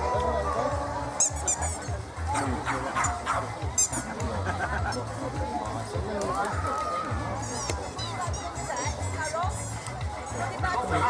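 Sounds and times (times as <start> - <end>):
background chatter: 0.0 - 11.0
high squeak: 1.2 - 1.9
dog barking: 2.4 - 3.4.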